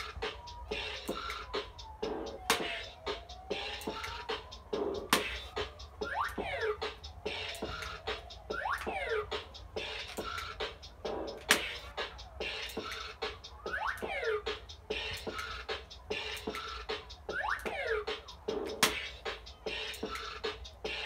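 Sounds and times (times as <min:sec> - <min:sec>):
electronic beat: 0:00.0 - 0:21.0
toy scratch-like sweep effects: 0:00.0 - 0:21.0.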